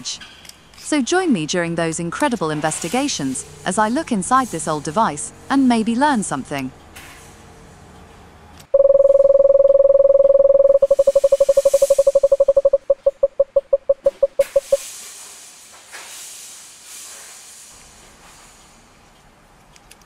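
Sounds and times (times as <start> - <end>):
rapid stuttering beeps: 8.8 - 14.8
steady electronic tone: 8.8 - 14.8.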